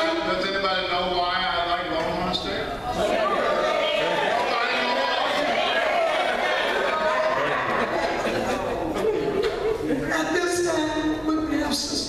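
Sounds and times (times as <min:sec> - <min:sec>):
indistinct chatter of many people: 0:00.0 - 0:12.0.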